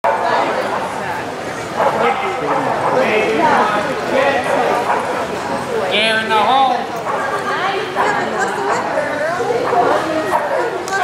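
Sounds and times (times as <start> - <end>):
chatter of people indoors: 0.0 - 11.0
dog barking: 0.1 - 0.9, 1.8 - 3.1, 4.5 - 5.3, 7.0 - 7.3, 9.6 - 11.0.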